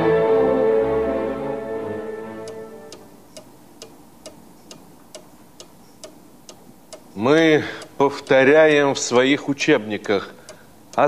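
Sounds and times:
string music: 0.0 - 3.2
clock ticking: 2.4 - 8.8, 10.0 - 11.0.

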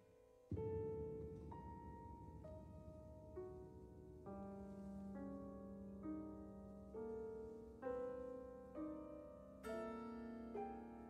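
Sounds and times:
soft piano notes: 0.0 - 11.0
long-held low piano note: 0.5 - 11.0.

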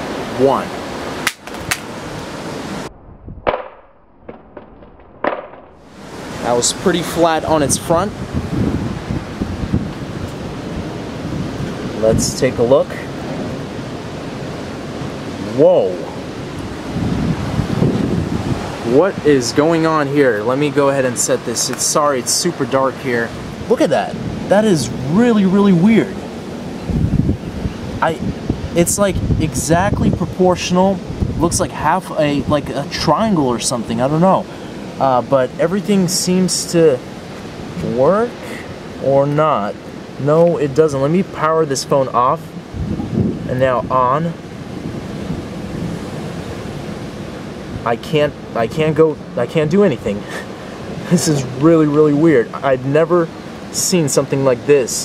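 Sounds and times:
wind rushing on microphone: 0.0 - 55.0
sharp knocks and clicks: 3.4 - 5.8.

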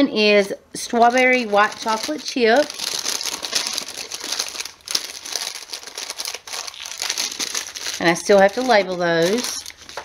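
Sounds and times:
paper bag crinkling: 0.9 - 10.0.

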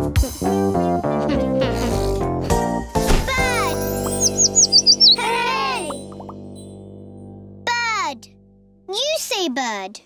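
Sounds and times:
children's show music: 0.0 - 6.8
small bird chirping: 4.0 - 6.4.

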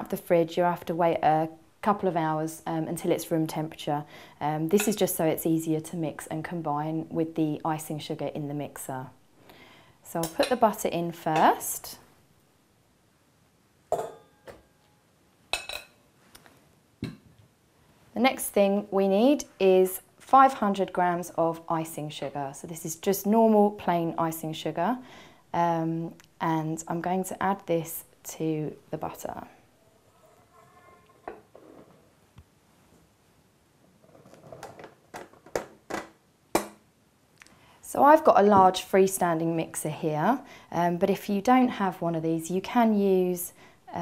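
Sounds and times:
metal utensil clinking on bowls: 4.8 - 5.0, 13.9 - 14.6, 15.6 - 16.0.

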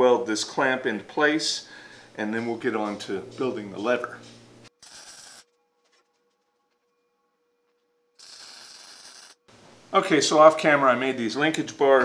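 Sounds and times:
welding arc crackle: 4.7 - 5.5, 8.2 - 9.5.

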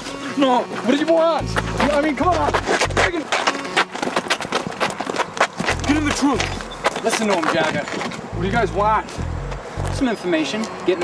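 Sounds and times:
quick irregular footsteps: 0.0 - 10.0
scraping scuffle: 0.2 - 8.2.

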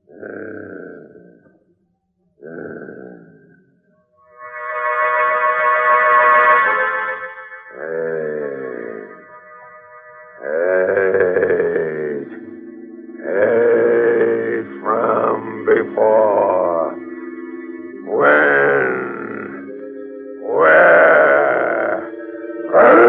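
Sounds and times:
gorilla grunting calls: 0.0 - 1.5, 2.4 - 3.8, 7.7 - 9.2, 10.4 - 12.5, 13.2 - 17.0, 18.0 - 19.7, 20.4 - 22.1, 22.7 - 23.0
music of sustained chords: 4.2 - 23.0.

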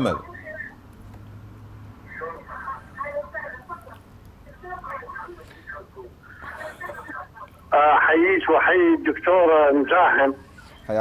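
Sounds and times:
telephone caller speaking: 6.8 - 10.4.

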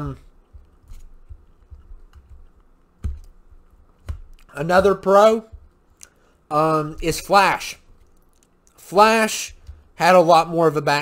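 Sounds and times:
soft clicks and taps: 0.5 - 6.2.

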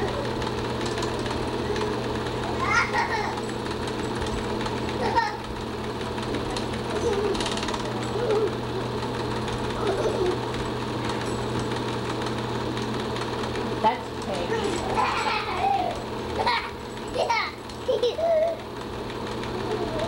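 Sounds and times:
film projector clatter and hum: 0.0 - 20.0.

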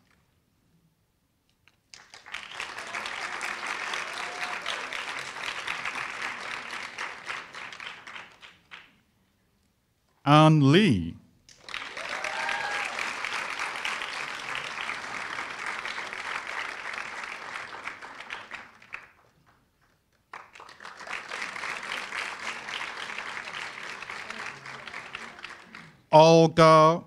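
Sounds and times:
audience applauding: 1.9 - 8.9, 11.5 - 19.6, 20.2 - 26.1
person calling out: 10.3 - 11.2, 26.1 - 27.0.

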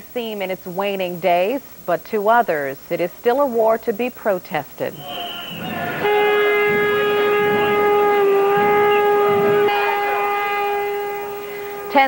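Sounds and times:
horn-like tone: 4.9 - 12.0
marching crowd: 4.9 - 12.0.

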